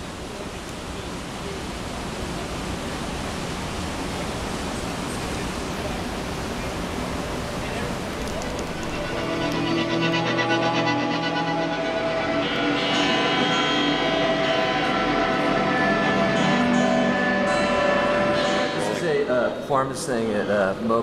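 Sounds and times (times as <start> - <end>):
electric guitar noise: 7.0 - 20.9
held guitar tones: 7.8 - 20.6.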